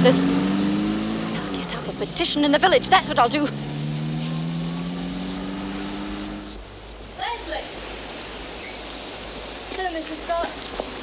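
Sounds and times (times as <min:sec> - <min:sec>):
soft hissing rustles: 0:01.2 - 0:11.0.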